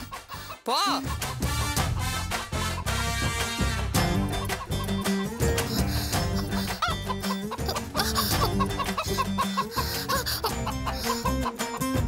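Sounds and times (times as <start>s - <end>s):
lively background music: 0.0s - 12.0s.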